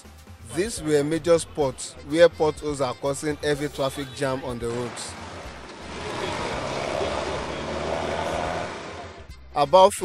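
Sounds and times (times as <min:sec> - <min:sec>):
vehicle passing on asphalt: 0:04.7 - 0:09.3.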